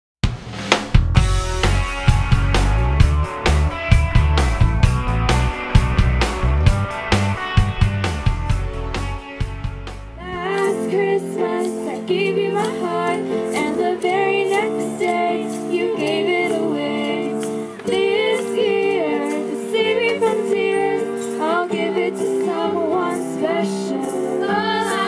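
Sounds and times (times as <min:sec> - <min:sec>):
keyboard: 0:01.0 - 0:25.0
girls singing through a pa system: 0:10.3 - 0:25.0.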